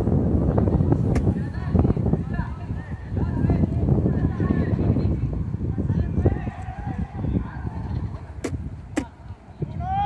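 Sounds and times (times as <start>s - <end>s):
wind noise: 0.0s - 10.0s.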